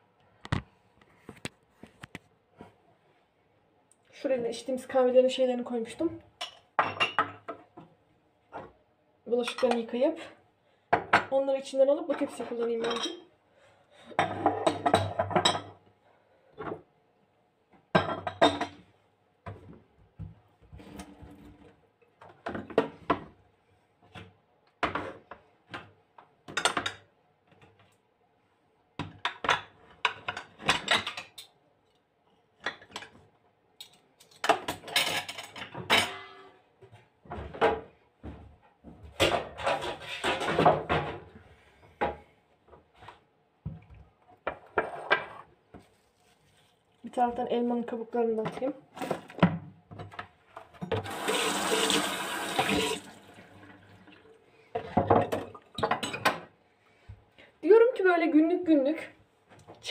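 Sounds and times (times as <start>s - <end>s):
dishes and utensils clinking: 12.1s - 13.3s, 18.0s - 18.8s, 33.8s - 36.5s.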